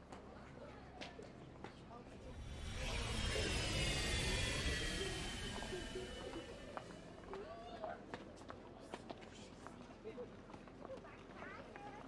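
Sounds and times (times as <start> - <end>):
jet airplane flying past: 2.1 - 8.0.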